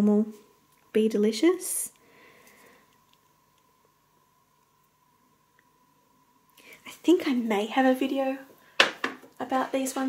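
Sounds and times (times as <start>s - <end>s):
soft-spoken speech: 0.0s - 2.0s, 6.8s - 8.5s, 9.4s - 10.0s
soft breathing: 2.0s - 3.1s, 6.5s - 7.0s.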